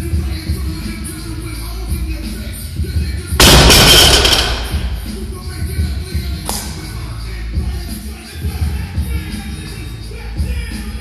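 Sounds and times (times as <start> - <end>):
barbell dropping with bumper plates: 3.4 - 5.1.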